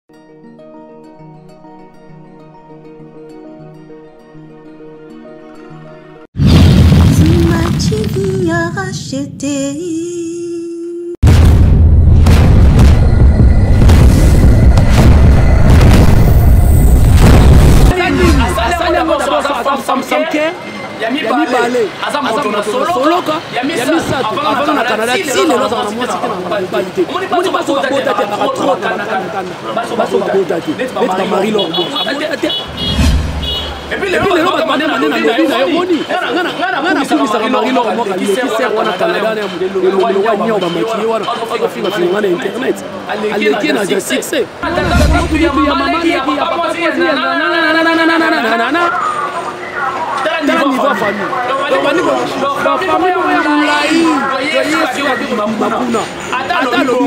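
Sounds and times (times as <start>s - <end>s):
person singing: 7.4s - 11.2s
deep cinematic boom: 11.2s - 19.0s, 32.7s - 33.9s, 44.6s - 46.2s
man talking: 17.9s - 20.4s, 33.9s - 57.0s.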